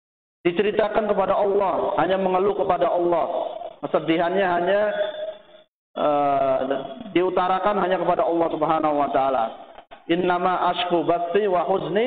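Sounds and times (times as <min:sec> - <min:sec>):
man speaking: 0:00.5 - 0:05.4, 0:06.0 - 0:12.0.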